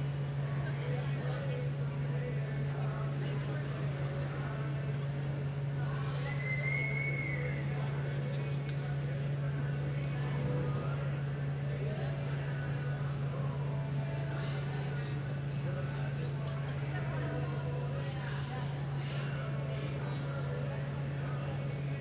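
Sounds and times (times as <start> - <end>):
faint voices: 0.0 - 22.0
steady low hum: 0.0 - 22.0.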